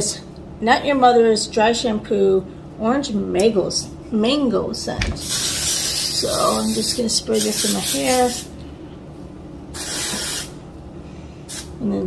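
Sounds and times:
aerosol spray hiss: 5.2 - 8.5, 9.8 - 10.6, 11.5 - 11.7.

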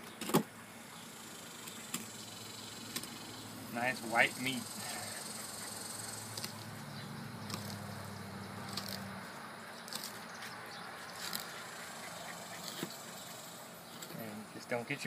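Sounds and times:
knife scratching and ticking: 7.4 - 7.8, 8.6 - 9.1.

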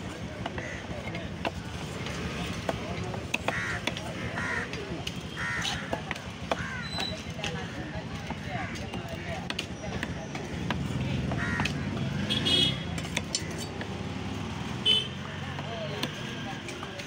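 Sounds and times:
market chatter: 0.0 - 17.0
crows cawing: 0.4 - 1.0, 3.4 - 7.8, 8.4 - 9.4, 11.3 - 12.0
cleaver chopping on wooden block: 1.3 - 4.1, 5.0 - 7.6, 12.9 - 14.0.

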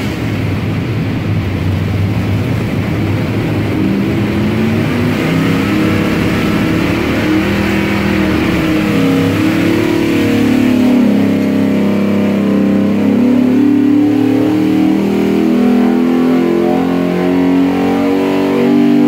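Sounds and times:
loud engine revving: 0.0 - 19.0.

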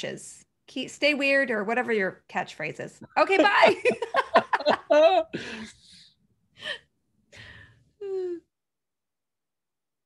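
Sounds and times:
person gasping: 5.3 - 8.4
person sighing: 6.6 - 8.5.

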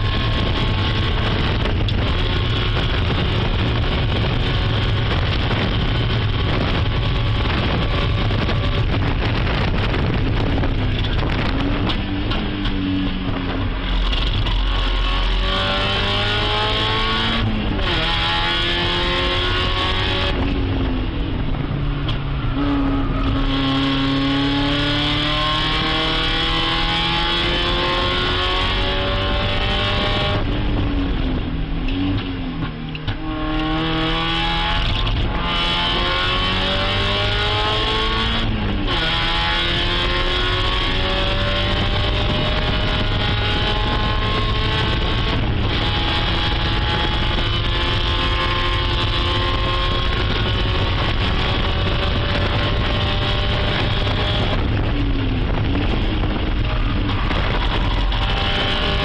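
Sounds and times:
race car engine at full throttle: 0.0 - 59.0.

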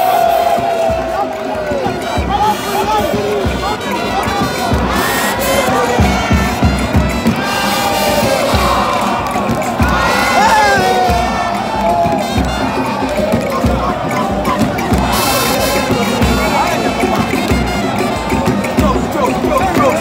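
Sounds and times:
stadium crowd cheering and singing: 0.0 - 20.0.

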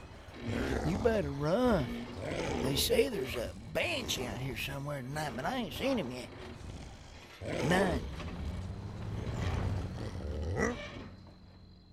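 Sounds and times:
deep monster-like roar: 0.2 - 4.5, 5.8 - 11.0.

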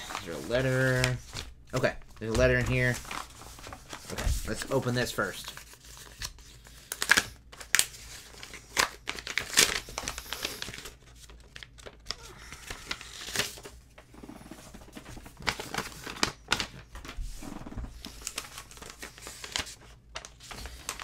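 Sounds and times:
paper ripping: 0.0 - 13.8, 14.8 - 21.0
paper envelope rustling: 0.0 - 13.9, 14.5 - 21.0.

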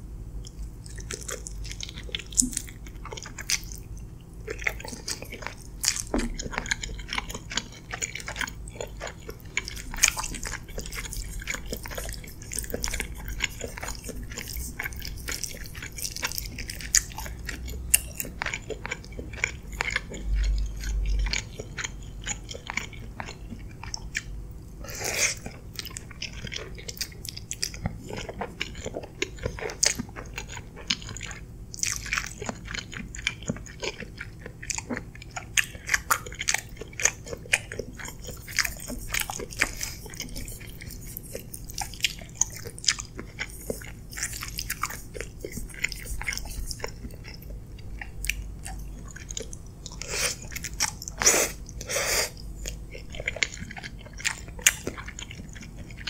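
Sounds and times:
close chewing and mouth smacks: 0.3 - 56.0.

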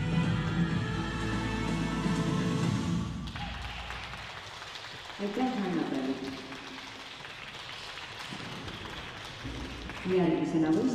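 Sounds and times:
audience applause: 3.2 - 10.2.

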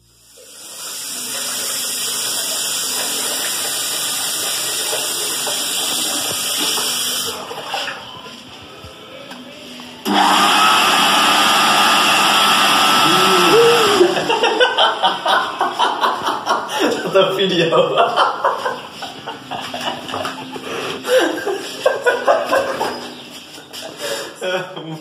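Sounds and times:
electric hand dryer running: 0.2 - 7.5, 10.0 - 15.4
man laughing: 13.0 - 23.1.

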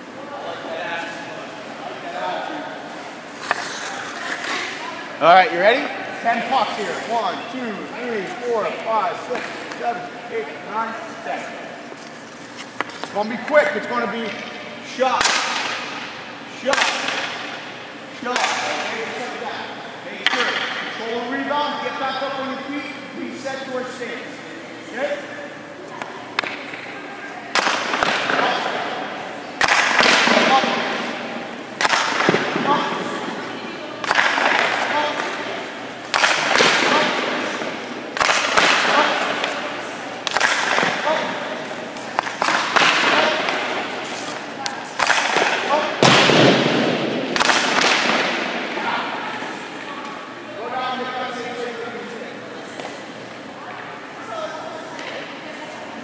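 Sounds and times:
hockey pucks hitting pads and boards: 8.6 - 10.0, 14.4 - 17.6, 18.2 - 19.3, 20.2 - 21.0, 26.3 - 26.9, 27.5 - 29.0, 29.6 - 49.5.

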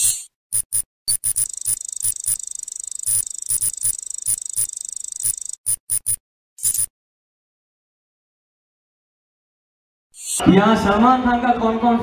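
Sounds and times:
fast high-pitched ticking chatter: 0.0 - 6.9
short sharp digital blips: 0.0 - 6.9.

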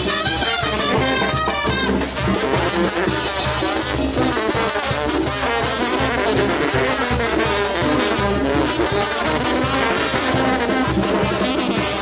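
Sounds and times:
brass band playing: 0.0 - 12.0.

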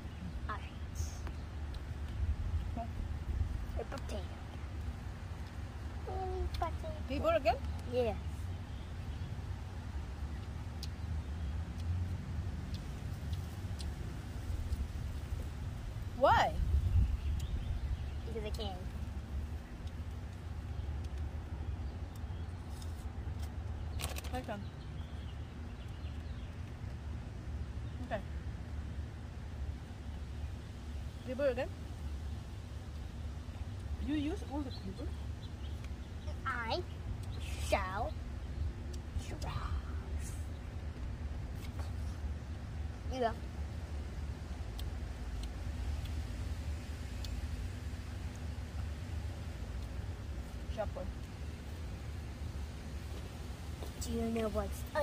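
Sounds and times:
low background rumble: 0.0 - 55.0.

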